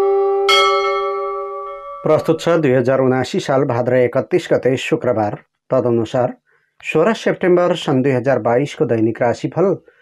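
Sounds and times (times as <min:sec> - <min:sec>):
bell ringing: 0:00.0 - 0:02.9.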